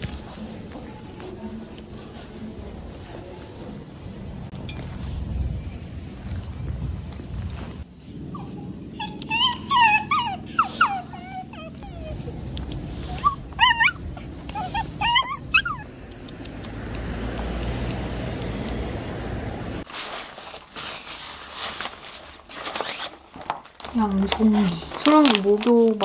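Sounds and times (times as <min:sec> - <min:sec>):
low outdoor rumble: 0:00.0 - 0:26.0
small dog whining: 0:08.0 - 0:16.5.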